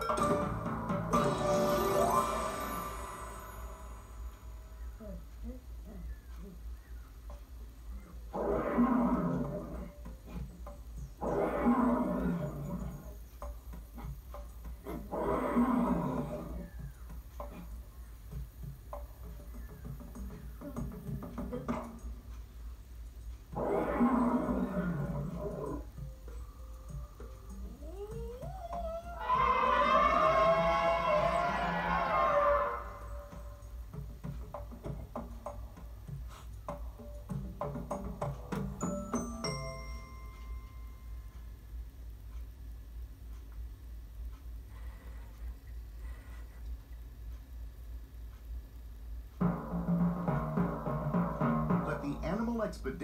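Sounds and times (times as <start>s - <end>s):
lion roaring: 8.1s - 10.4s, 11.2s - 13.2s, 14.8s - 16.8s, 23.5s - 25.9s, 27.8s - 33.6s
trumpet-like elephant call: 29.2s - 33.6s.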